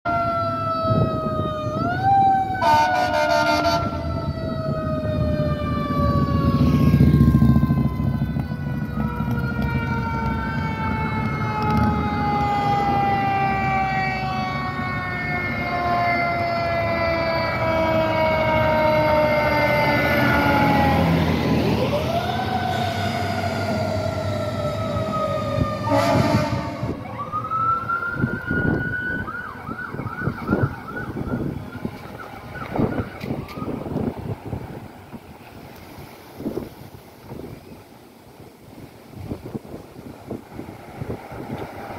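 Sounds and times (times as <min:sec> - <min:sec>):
fire truck siren: 0:00.0 - 0:35.5
horn blast: 0:02.6 - 0:04.0, 0:25.6 - 0:27.0.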